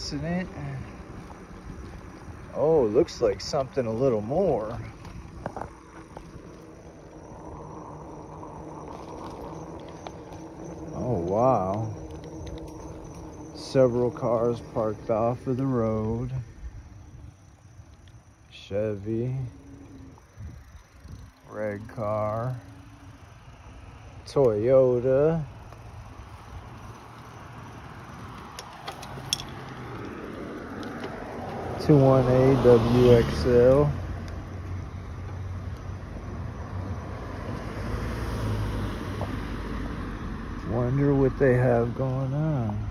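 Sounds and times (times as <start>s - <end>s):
low hum of street traffic: 0.0s - 42.9s
outdoor night background noise: 0.0s - 42.9s
faint ticks: 4.7s - 16.2s, 17.4s - 18.5s, 25.6s - 26.0s, 33.7s - 36.0s
person's wordless voice: 40.6s - 42.9s.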